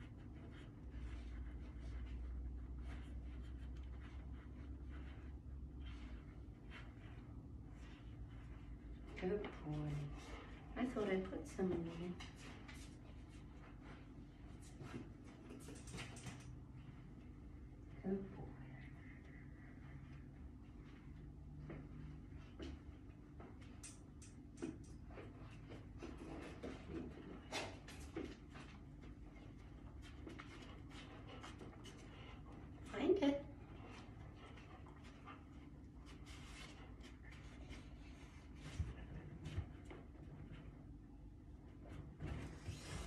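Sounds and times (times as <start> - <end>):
dog clicks and taps on wooden floor: 15.5 - 16.6, 23.5 - 25.2.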